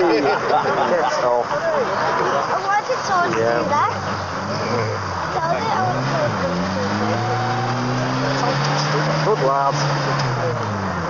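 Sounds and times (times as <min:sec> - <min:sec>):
voices: 0:00.0 - 0:11.0
rally car engine running: 0:01.4 - 0:11.0.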